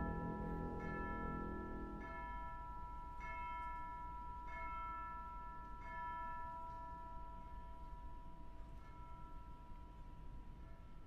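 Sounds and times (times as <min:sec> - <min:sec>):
tubular bells ringing: 0:00.0 - 0:08.1.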